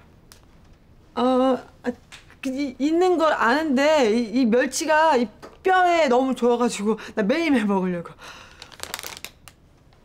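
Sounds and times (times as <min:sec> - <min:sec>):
plastic bag crinkling: 0:08.5 - 0:09.6.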